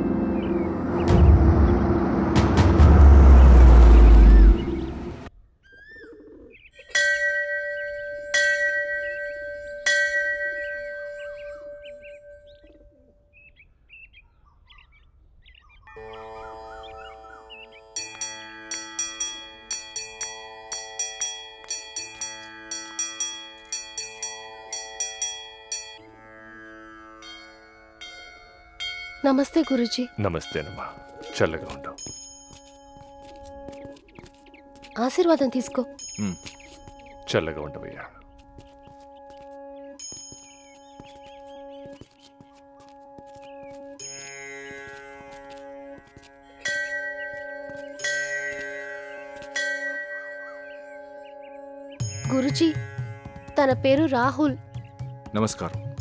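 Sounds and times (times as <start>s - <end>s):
loud rumbling swell: 0.0s - 5.3s
birds chirping: 0.0s - 26.0s, 27.4s - 56.0s
held musical chord: 29.4s - 56.0s
temple bell strikes ringing: 46.6s - 50.7s.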